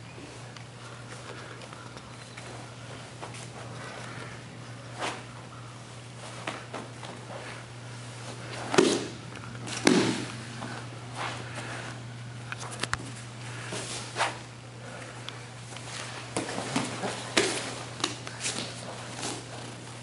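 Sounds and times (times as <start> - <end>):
bodies thumping on mat: 8.6 - 10.4.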